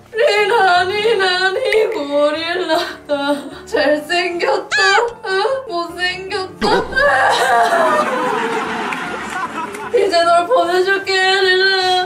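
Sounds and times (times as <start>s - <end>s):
person singing yodel-like warble: 4.7s - 5.2s.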